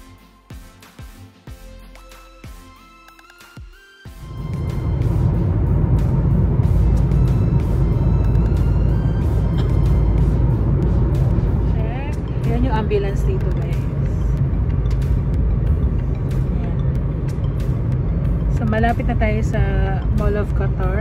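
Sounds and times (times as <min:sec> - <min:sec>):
music playing: 0:00.0 - 0:21.0
car driving at highway speed: 0:04.1 - 0:21.0.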